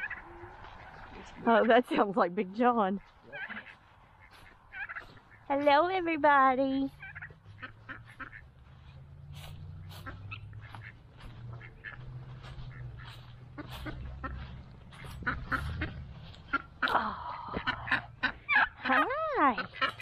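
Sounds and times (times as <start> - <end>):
poultry calling: 0.0 - 5.8, 6.8 - 20.0
steady low rumble: 6.9 - 20.0.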